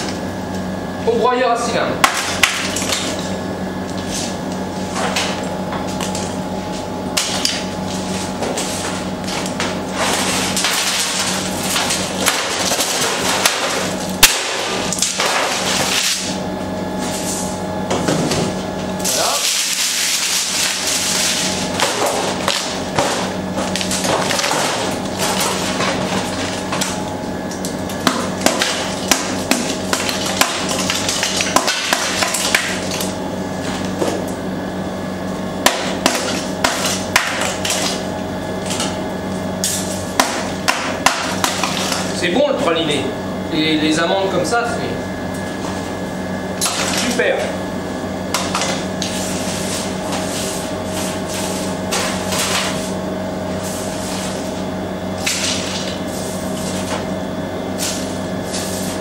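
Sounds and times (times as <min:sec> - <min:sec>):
steady hum: 0:00.0 - 0:59.0.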